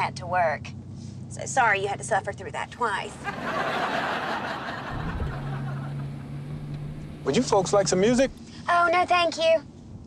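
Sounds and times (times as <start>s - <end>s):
low motor hum: 0.0s - 8.7s.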